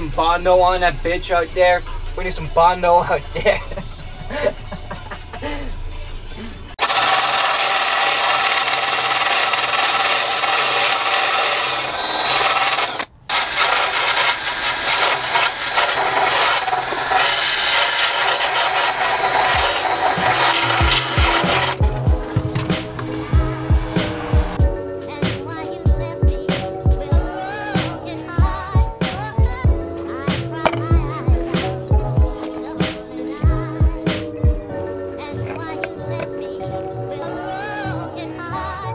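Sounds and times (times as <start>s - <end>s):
background music with a beat: 3.2s - 6.7s, 20.2s - 37.3s
angle grinder grinding sheet metal: 6.8s - 24.4s, 30.6s - 33.1s.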